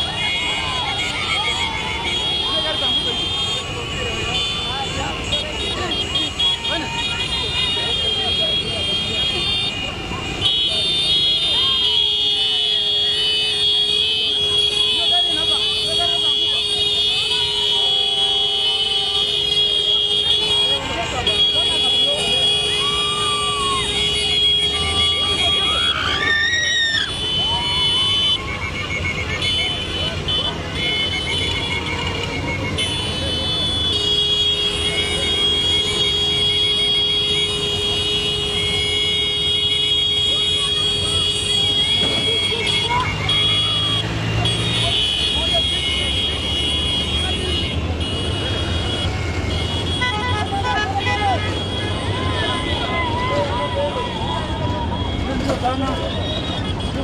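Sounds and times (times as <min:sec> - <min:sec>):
long high horn blasts: 0:00.0 - 0:25.7, 0:27.1 - 0:52.9
people shouting: 0:00.0 - 0:33.9, 0:49.5 - 0:56.2
motorcycle engines rumbling: 0:00.0 - 0:57.0.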